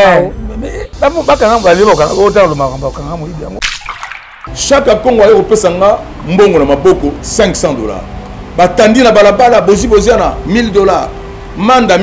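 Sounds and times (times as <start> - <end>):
hissing noise: 0.7 - 5.5.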